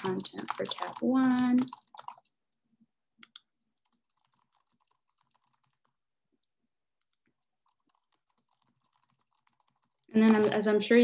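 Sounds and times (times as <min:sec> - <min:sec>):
typing on computer keyboard: 0:00.0 - 0:02.6, 0:03.2 - 0:10.8.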